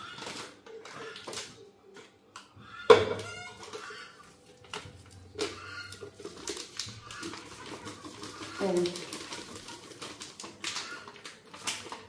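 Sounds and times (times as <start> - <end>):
plastic packet crinkling: 0.0 - 1.7, 3.2 - 12.0
powder pouring into plastic jar: 4.6 - 12.0.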